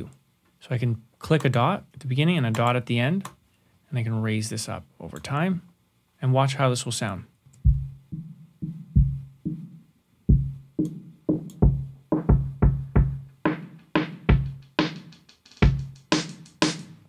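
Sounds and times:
filtered drum loop: 7.6s - 17.0s.

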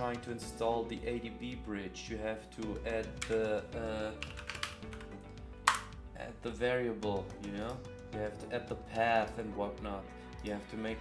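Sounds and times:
background music: 0.0s - 11.0s
computer keyboard typing: 4.2s - 5.8s
sharp loud click: 5.7s - 5.9s.

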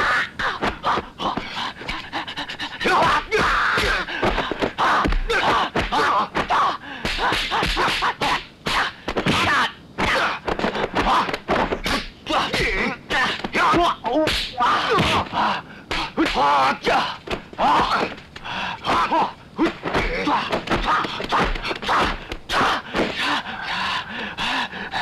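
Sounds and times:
fighters shouting and grunting: 0.0s - 25.0s
punch and kick whacks: 3.4s - 8.1s, 8.7s - 13.6s, 14.2s - 15.3s, 18.9s - 23.2s.

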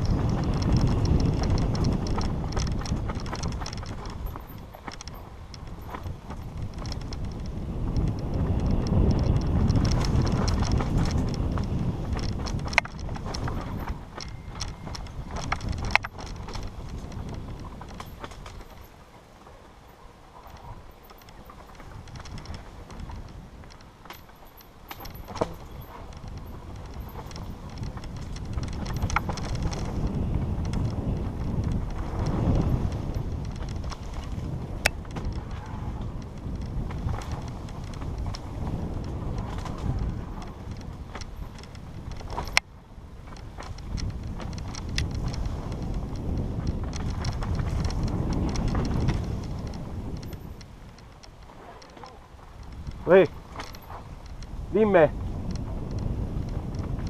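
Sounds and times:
wind on microphone: 0.0s - 19.0s, 20.3s - 24.1s, 25.0s - 57.0s
bike rattling: 0.0s - 57.0s
bike tyres rumbling over dirt: 0.0s - 57.0s.

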